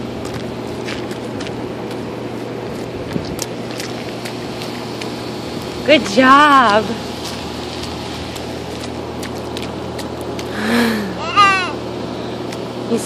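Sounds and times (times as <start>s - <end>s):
boots splashing in puddle: 0.0s - 5.7s, 6.4s - 10.7s
steady mechanical hum: 0.0s - 13.0s.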